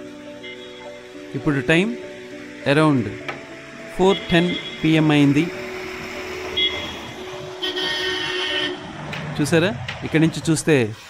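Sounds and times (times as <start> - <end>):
bus horn honking: 0.4 - 1.0, 4.0 - 5.2, 6.4 - 9.0.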